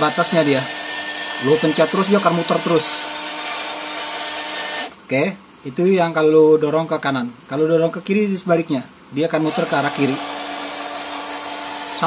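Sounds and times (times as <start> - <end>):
electric motor and gears whirring: 0.0 - 5.0, 9.4 - 12.0.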